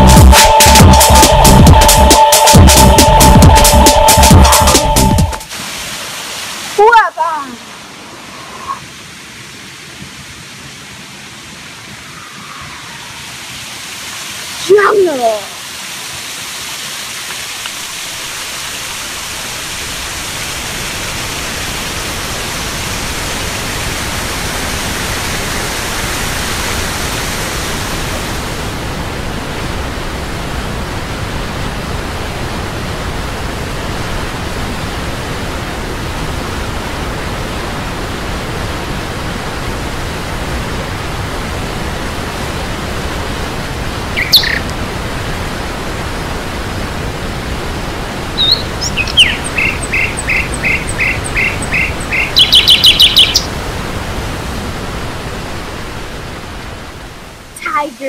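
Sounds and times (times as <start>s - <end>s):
waterfall rushing: 0.0s - 58.0s
bird calling: 12.0s - 13.6s, 44.2s - 44.7s, 48.4s - 53.5s.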